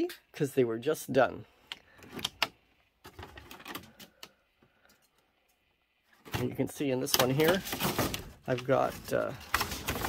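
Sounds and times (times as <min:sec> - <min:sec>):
plastic pots clicking and crackling: 0:01.7 - 0:10.0.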